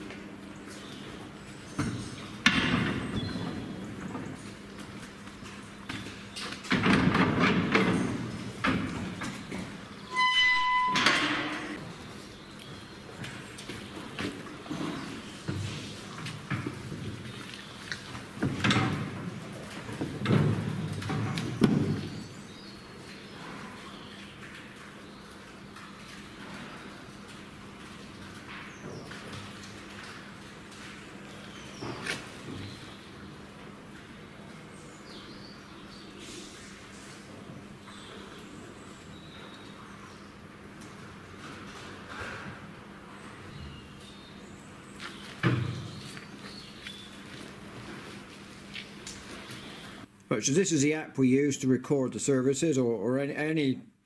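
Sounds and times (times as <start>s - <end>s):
gate banging shut: 10.1s - 11.8s
steel gates clanging and rattling: 10.1s - 11.8s.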